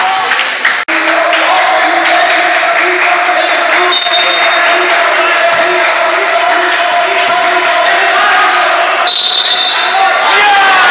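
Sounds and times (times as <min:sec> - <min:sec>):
voices echoing in hall: 0:00.0 - 0:10.9
sneaker squeaks: 0:05.9 - 0:07.4.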